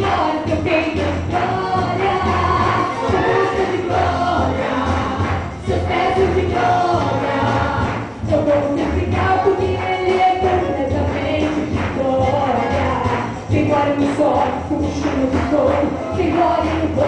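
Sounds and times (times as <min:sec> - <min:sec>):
woman singing into a microphone: 0:00.0 - 0:04.1, 0:08.2 - 0:17.0
amplified backing music with bass: 0:00.0 - 0:17.0.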